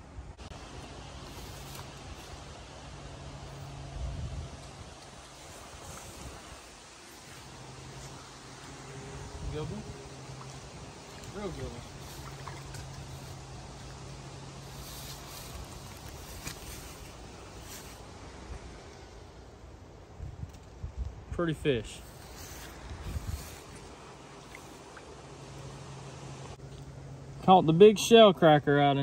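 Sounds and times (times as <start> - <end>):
flying insect buzzing: 5.2 - 18.0, 22.0 - 25.0.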